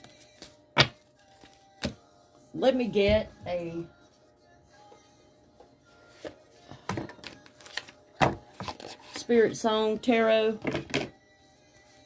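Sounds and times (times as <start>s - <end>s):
cards being shuffled: 7.2s - 9.2s.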